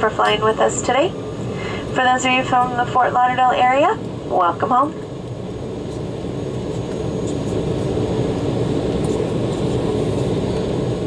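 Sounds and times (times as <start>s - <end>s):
jet engines rumbling in cabin: 0.0s - 11.0s.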